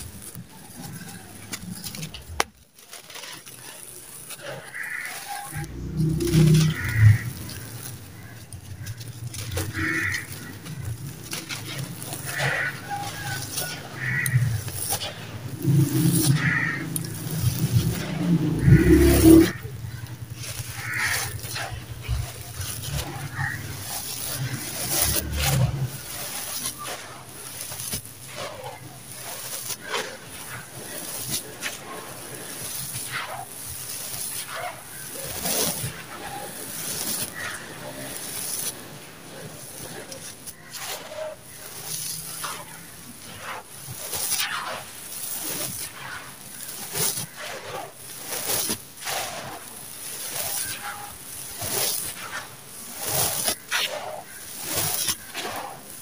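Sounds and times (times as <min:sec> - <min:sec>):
hands crunching gritty sand mix: 0:00.0 - 0:56.0
low rumble: 0:05.6 - 0:12.3, 0:14.0 - 0:26.0.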